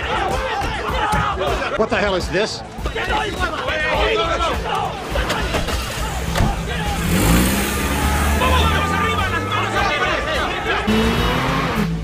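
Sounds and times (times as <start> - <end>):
car engine starting and revving: 5.1 - 12.0.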